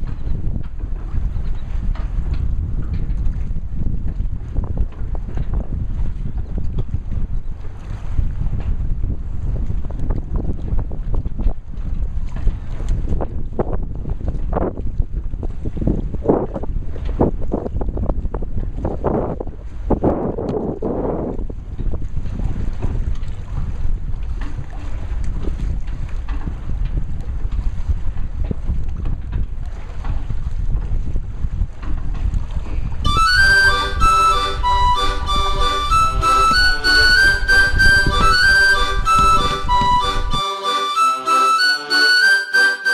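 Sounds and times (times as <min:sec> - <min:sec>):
wind buffeting microphone: 0:00.0 - 0:40.4.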